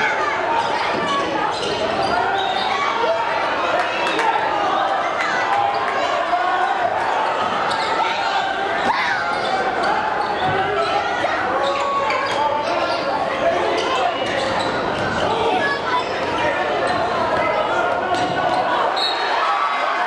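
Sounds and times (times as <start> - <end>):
crowd chatter and calls: 0.0 - 20.0.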